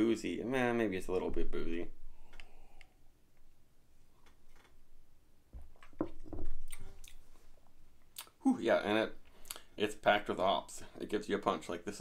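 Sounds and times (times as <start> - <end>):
mouth and throat clicks: 8.1 - 8.4, 9.4 - 9.7.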